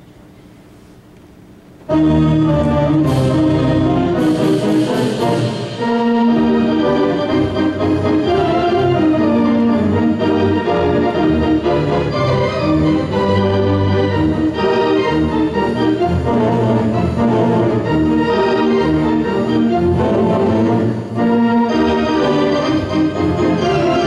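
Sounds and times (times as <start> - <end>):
theatre organ chords: 1.6 - 24.0.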